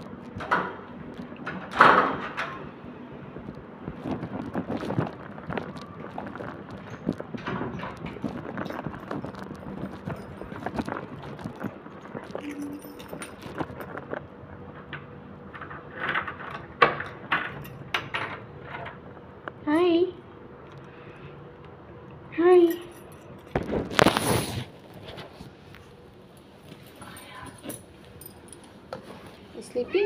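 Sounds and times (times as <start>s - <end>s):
cat mewing: 29.7s - 30.0s.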